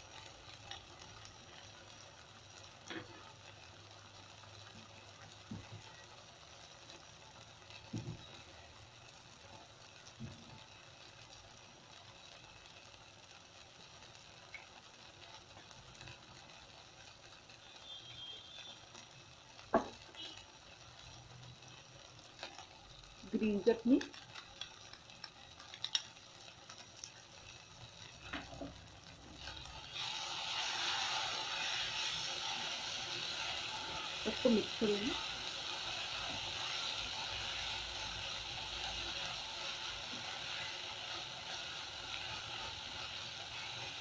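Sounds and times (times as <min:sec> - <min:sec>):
vegetables sizzling in a wok: 0:00.0 - 0:44.0.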